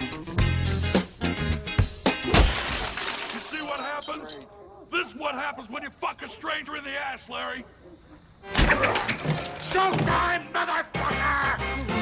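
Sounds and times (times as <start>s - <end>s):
glass shattering: 2.2s - 4.5s, 8.6s - 10.0s
tinkling glass shards: 2.5s - 4.5s, 8.9s - 9.9s.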